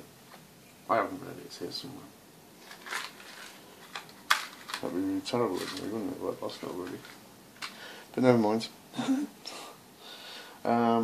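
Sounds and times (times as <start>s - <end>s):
plastic bag crinkling: 2.6s - 7.8s.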